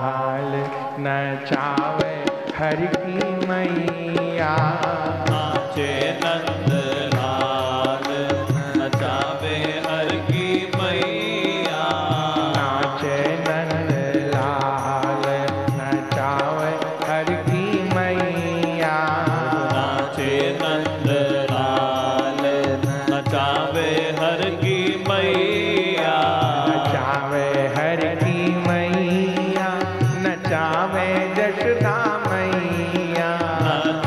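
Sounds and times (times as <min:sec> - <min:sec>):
men singing devotional melody: 0:00.0 - 0:34.0
percussion beat: 0:01.5 - 0:34.0.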